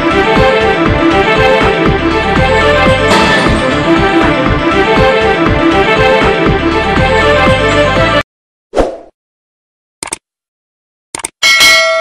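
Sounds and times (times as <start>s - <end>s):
bright bell chime: 11.4s - 12.0s.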